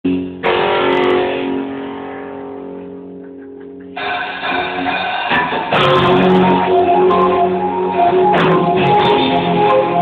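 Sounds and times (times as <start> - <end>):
electric guitar chord ringing: 0.1 - 10.0
full band playing: 2.8 - 10.0.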